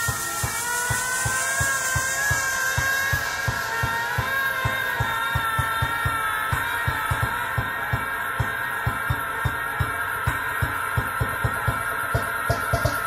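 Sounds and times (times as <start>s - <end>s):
hiss-like wash of high noise: 0.0s - 13.0s.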